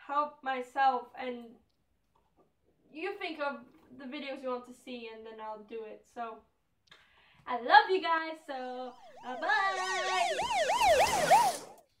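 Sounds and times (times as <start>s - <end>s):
siren-like wail sweeping: 8.6s - 12.0s.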